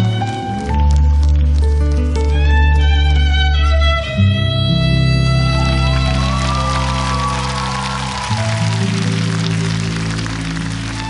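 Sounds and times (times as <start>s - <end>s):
sustained melody lines: 0.0s - 11.0s.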